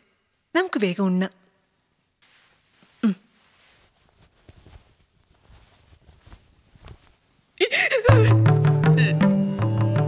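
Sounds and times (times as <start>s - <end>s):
cricket chirping: 0.0s - 7.1s
person speaking: 2.8s - 3.8s.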